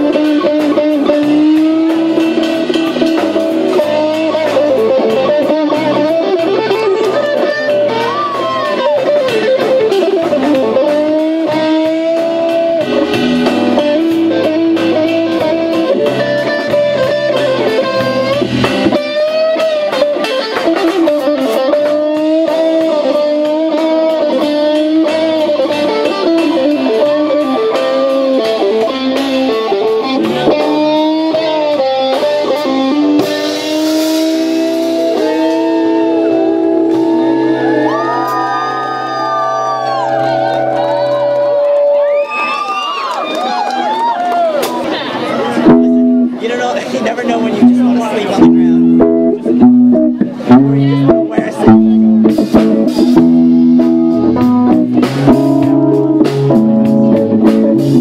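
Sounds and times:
electric guitar lead: 0.0s - 58.0s
live rock band playing: 0.0s - 58.0s.

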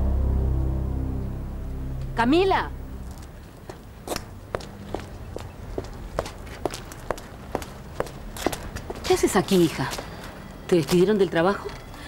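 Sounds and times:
footsteps on concrete: 3.0s - 11.1s.

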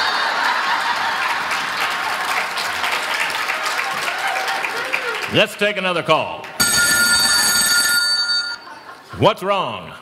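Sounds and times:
audience laughing: 0.0s - 2.7s, 8.6s - 9.3s
audience applauding: 0.0s - 5.7s.

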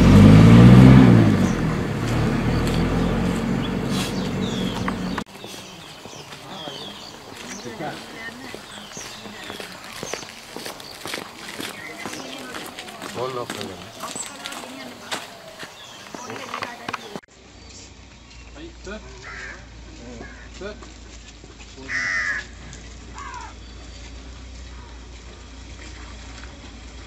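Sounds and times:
footsteps: 1.9s - 27.0s
faint voices: 4.5s - 17.3s
crow cawing: 19.2s - 20.6s, 21.9s - 23.6s.

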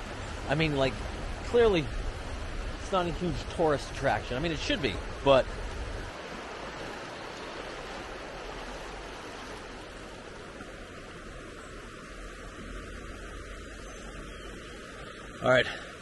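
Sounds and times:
river rushing over rocks: 0.0s - 16.0s.

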